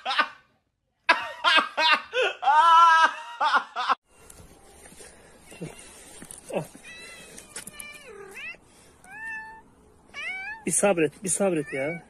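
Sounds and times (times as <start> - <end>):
cat meowing: 6.8 - 10.7.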